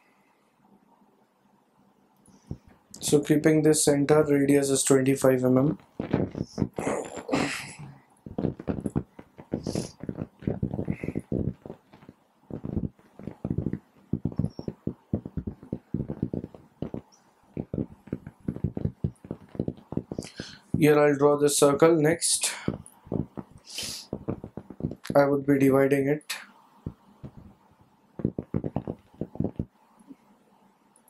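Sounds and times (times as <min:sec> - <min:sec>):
man coughing and clearing throat: 0:06.7 - 0:08.0
short hiss: 0:09.6 - 0:10.0, 0:23.6 - 0:24.2.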